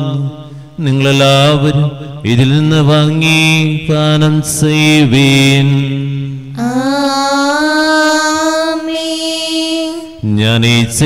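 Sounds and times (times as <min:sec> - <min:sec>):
priest chanting: 0:00.0 - 0:11.0.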